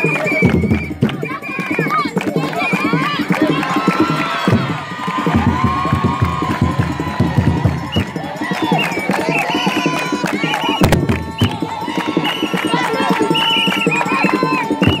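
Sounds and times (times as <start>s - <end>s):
crowd noise: 0.0s - 15.0s
handclapping: 0.0s - 15.0s
voices singing and calling: 0.0s - 15.0s
wooden hand drums: 0.0s - 15.0s.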